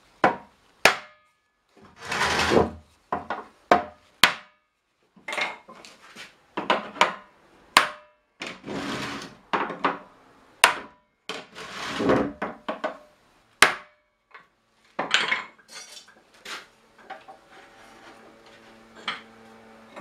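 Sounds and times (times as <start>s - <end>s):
scraping sounds: 1.8s - 3.0s, 8.5s - 9.4s, 11.5s - 12.4s, 16.0s - 20.0s.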